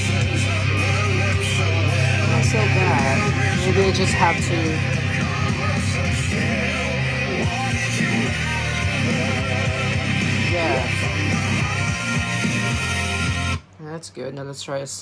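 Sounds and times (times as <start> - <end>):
rock song with vocals on speaker: 0.0 - 13.7.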